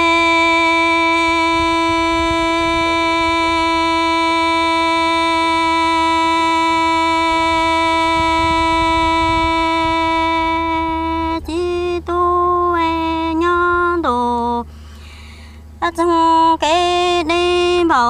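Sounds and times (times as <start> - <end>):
person singing a long note: 0.0 - 14.7.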